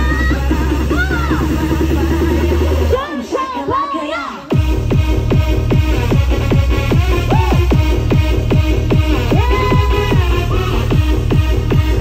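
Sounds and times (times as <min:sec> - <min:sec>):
pounding kick-drum beat: 0:00.0 - 0:03.0, 0:04.5 - 0:12.0
electronic dance music: 0:00.0 - 0:12.0.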